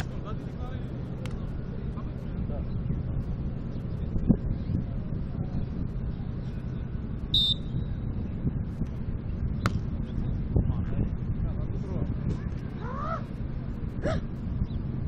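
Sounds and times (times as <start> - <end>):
distant voices: 0.0 - 15.0
wind noise on microphone: 0.0 - 15.0.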